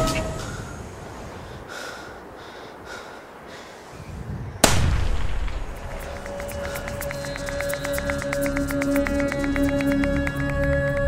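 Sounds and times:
echoing gunshot: 4.6 - 6.2
music with ticking pulse: 5.9 - 11.0.

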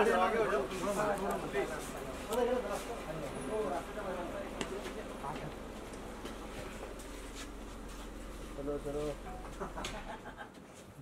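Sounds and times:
low steady hum: 0.0 - 10.5.

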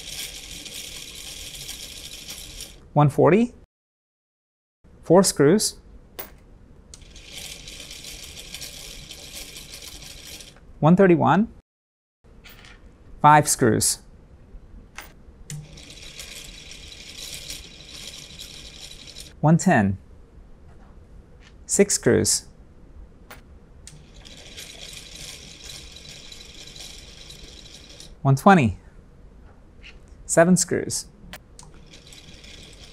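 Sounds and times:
electric motor rattling: 0.0 - 2.8, 7.0 - 10.6, 15.5 - 19.4, 23.9 - 28.2, 31.6 - 32.9.

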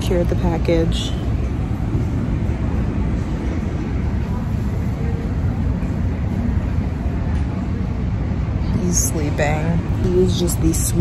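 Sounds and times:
low rumble of terminal noise: 0.0 - 11.0
murmur of distant voices: 0.0 - 11.0.

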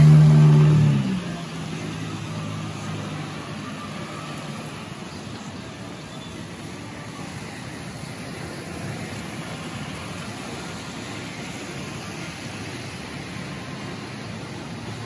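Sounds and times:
traffic rumble: 0.0 - 15.0.

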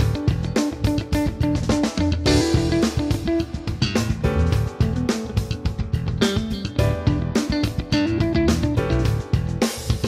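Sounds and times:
clean electric guitar picked notes: 2.3 - 9.1.

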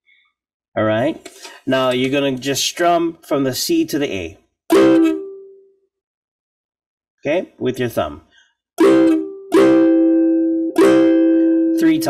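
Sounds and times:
ukulele chord strummed: 4.7 - 5.6, 8.8 - 12.0.

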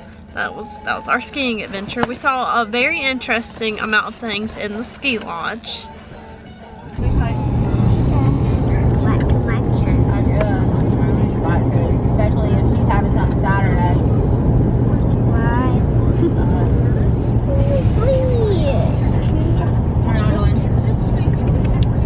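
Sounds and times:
faint voices: 0.0 - 22.0
car cabin road and engine rumble: 6.3 - 22.0.

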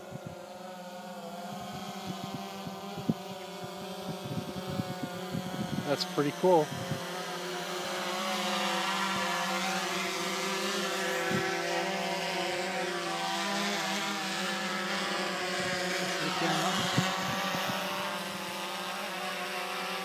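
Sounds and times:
drone propellers buzzing: 0.0 - 20.0.

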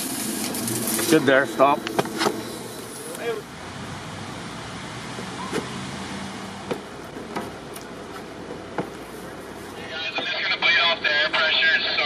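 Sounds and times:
worksite machinery running: 0.0 - 3.7.

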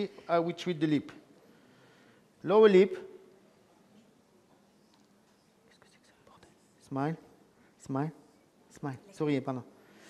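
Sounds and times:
man speaking: 0.0 - 1.2, 2.4 - 3.2, 6.8 - 9.8
faint whispered speech: 3.7 - 9.6.

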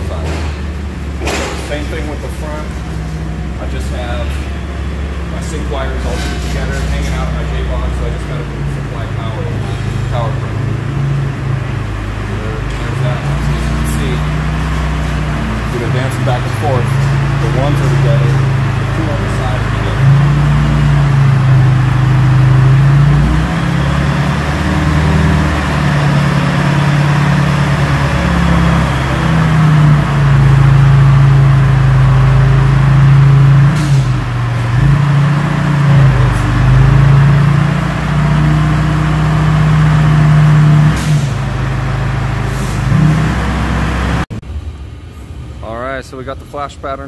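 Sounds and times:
truck engine idling: 0.0 - 47.0.

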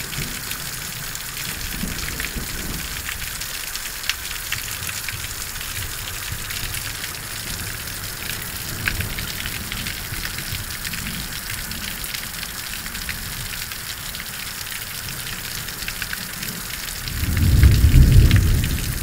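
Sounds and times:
steady rain falling: 0.0 - 19.0
ticks of raindrops: 0.0 - 19.0
thunder rumble: 17.0 - 19.0.

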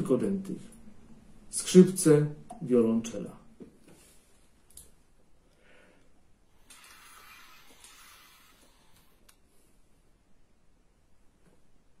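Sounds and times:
faint breathy hiss: 5.4 - 10.2.

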